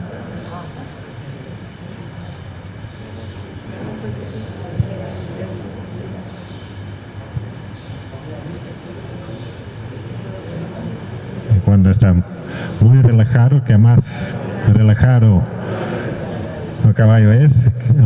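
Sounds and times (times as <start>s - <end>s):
faint murmured voices: 0.0s - 18.0s
room noise hum: 0.0s - 18.0s.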